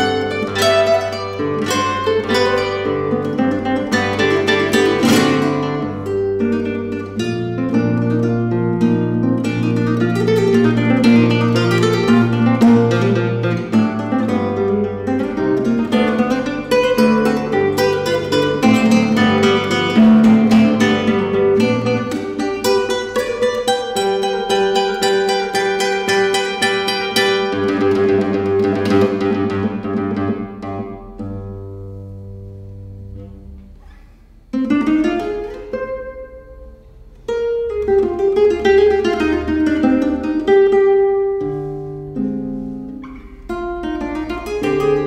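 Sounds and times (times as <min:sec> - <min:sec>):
classical guitar fingerstyle: 0:00.0 - 0:45.0.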